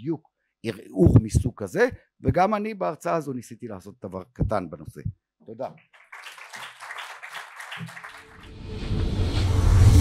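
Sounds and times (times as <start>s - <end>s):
audience applauding: 5.9s - 9.0s
music: 8.2s - 10.0s.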